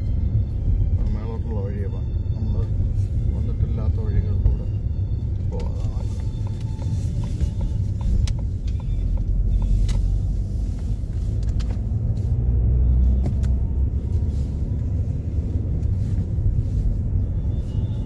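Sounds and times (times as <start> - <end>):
car rumbling on the move: 0.0 - 18.0.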